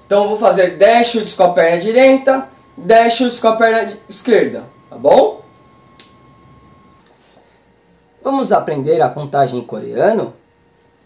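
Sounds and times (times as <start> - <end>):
faint high whine: 0.0 - 11.0
sharp click: 6.0 - 6.2.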